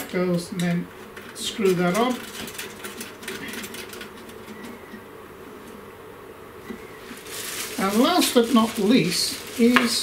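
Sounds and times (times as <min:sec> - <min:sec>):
handling noise: 0:06.6 - 0:10.0.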